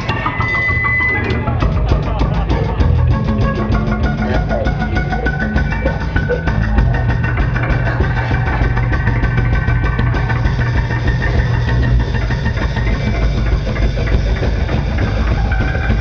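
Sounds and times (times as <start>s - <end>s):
band playing distorted drone: 0.0s - 16.0s.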